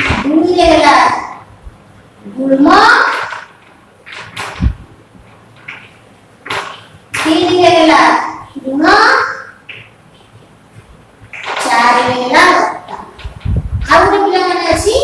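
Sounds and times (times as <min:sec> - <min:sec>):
children speaking: 0:11.6 - 0:13.2.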